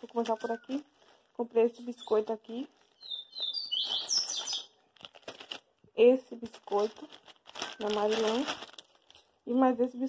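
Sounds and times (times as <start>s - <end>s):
plastic packaging crinkling: 0.0s - 9.6s
small bird chirping: 0.1s - 0.9s, 1.8s - 5.0s.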